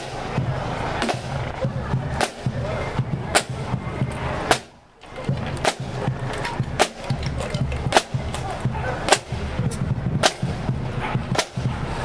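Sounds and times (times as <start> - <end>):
marching drums: 0.0 - 12.0.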